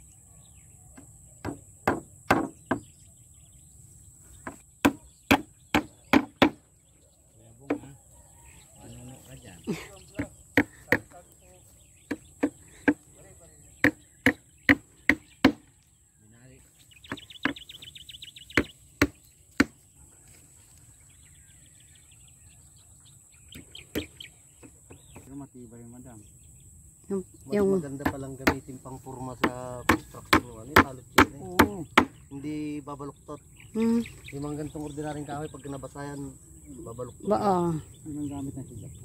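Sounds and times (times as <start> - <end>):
sharp knocks: 1.0 - 2.9, 4.4 - 6.6, 29.4 - 32.2.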